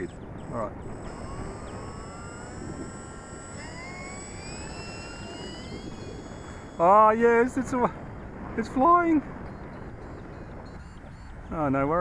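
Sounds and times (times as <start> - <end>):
model plane electric motor whine: 0.0 - 11.5.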